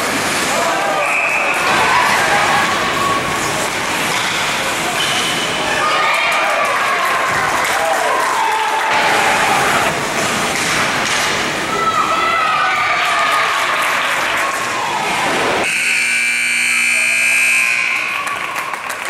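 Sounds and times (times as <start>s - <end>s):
spectators shouting: 0.4s - 10.2s, 11.5s - 15.6s
arena game horn blast: 15.6s - 18.2s.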